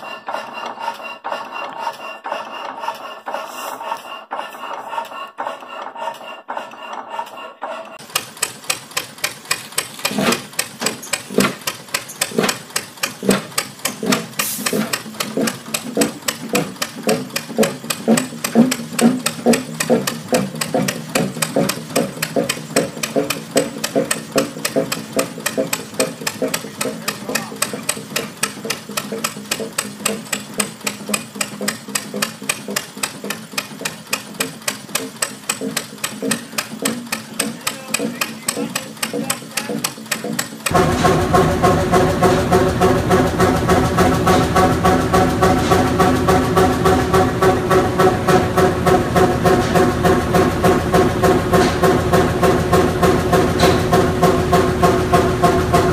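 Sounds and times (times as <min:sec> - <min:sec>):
diesel engine running: 0:34.8 - 0:55.9.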